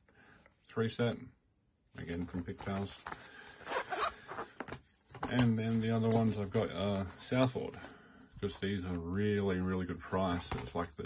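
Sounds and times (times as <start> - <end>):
zipper rasping slide: 3.6 - 4.6.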